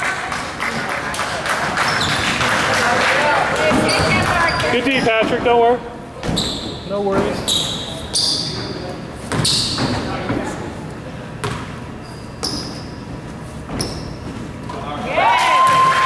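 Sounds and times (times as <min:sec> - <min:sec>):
basketball bouncing on hardwood: 0:11.4 - 0:11.7
people shouting in a hall: 0:15.0 - 0:16.0.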